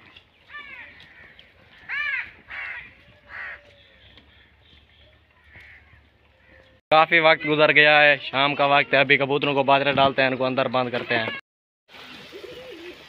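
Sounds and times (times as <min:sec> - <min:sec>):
bird cawing: 0:00.5 - 0:06.8.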